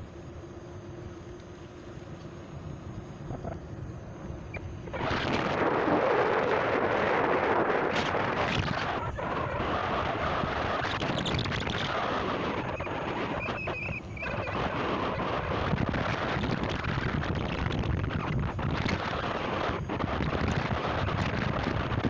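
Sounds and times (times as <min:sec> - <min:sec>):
wind buffeting microphone: 0:04.5 - 0:22.0.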